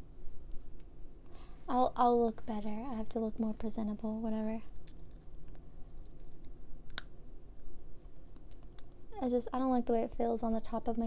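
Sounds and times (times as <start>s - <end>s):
plastic retainer clicks: 6.0s - 7.1s.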